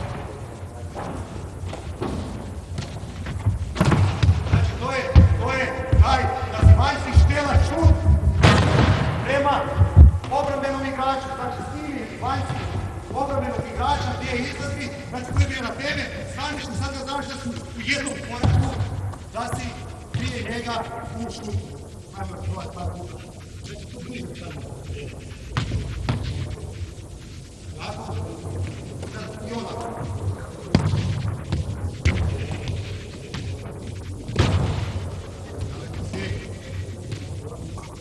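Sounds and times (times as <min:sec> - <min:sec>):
feet on court floor: 0:00.0 - 0:10.6, 0:11.7 - 0:21.7, 0:25.2 - 0:26.8, 0:27.8 - 0:38.0
steady low hum: 0:00.0 - 0:38.0
voices talking and calling: 0:00.0 - 0:38.0.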